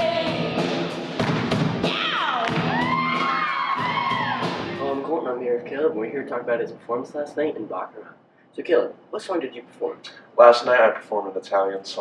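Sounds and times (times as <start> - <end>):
high voices whooping: 1.9 - 5.0
live rock band playing: 2.6 - 5.0.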